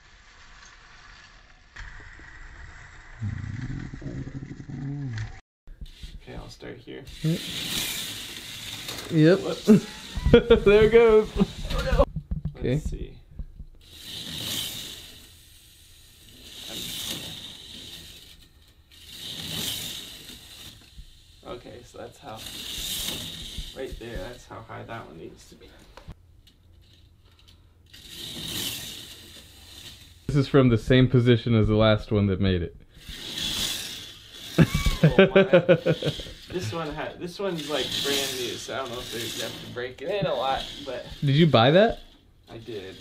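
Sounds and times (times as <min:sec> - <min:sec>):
toy roller coaster rattling: 0:00.0 - 0:06.5, 0:07.1 - 0:12.1, 0:13.8 - 0:25.8, 0:26.4 - 0:30.3, 0:32.9 - 0:43.0
people laughing: 0:09.6 - 0:12.1, 0:34.6 - 0:37.0.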